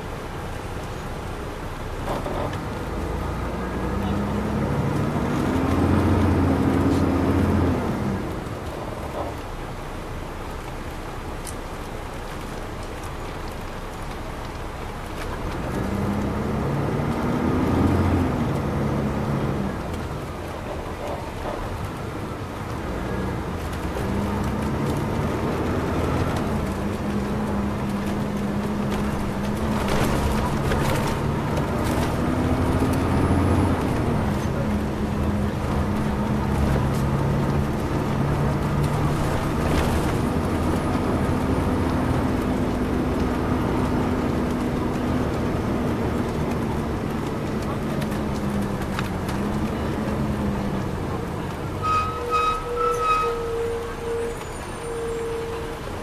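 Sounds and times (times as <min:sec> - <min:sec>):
bus engine pulling hard: 0:00.0 - 0:56.0
road rumble: 0:00.0 - 0:56.0.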